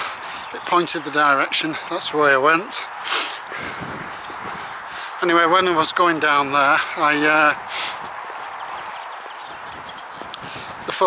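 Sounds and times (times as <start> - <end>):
person sniffing: 3.0 - 3.8, 7.7 - 8.0.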